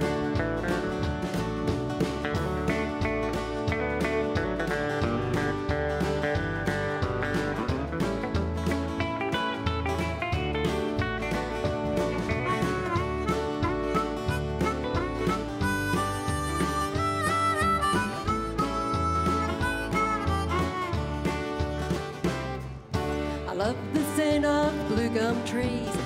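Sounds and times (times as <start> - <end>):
acoustic and electric guitars: 0.0 - 26.0
bass and drums: 0.0 - 26.0
harmonica solo with bending notes: 12.2 - 22.0.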